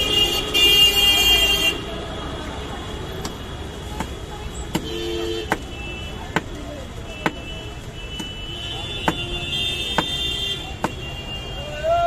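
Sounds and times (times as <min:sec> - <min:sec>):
street traffic rumble: 0:00.0 - 0:12.0
car horn toot: 0:07.1 - 0:11.9.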